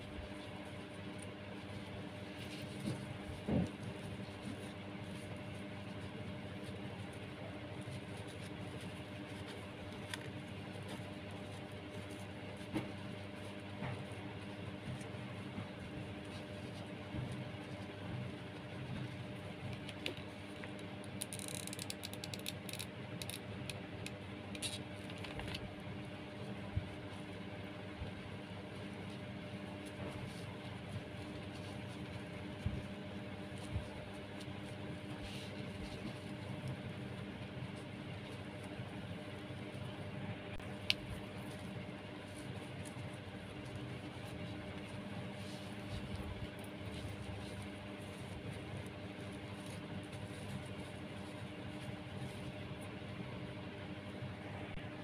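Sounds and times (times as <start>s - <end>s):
low mechanical hum: 0.0s - 55.0s
clicks and rustles of handling twine: 0.3s - 40.0s, 40.6s - 54.3s.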